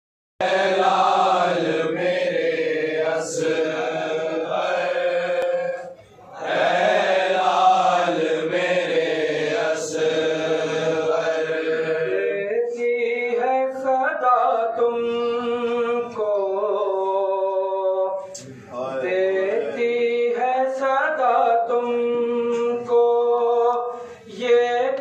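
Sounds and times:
men chanting a lament: 0.4 - 25.0.

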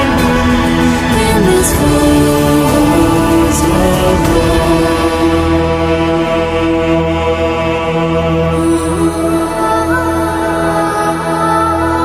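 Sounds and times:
choir chanting held notes: 0.0 - 12.0
low sustained drone: 0.0 - 12.0.

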